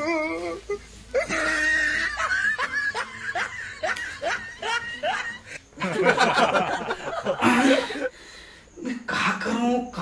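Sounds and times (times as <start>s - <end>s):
man laughing: 1.2s - 8.1s.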